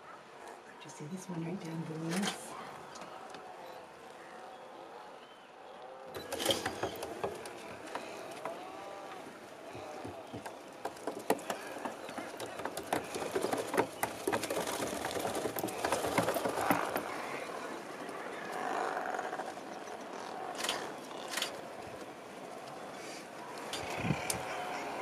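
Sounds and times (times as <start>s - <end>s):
seabirds calling: 0.0s - 25.0s.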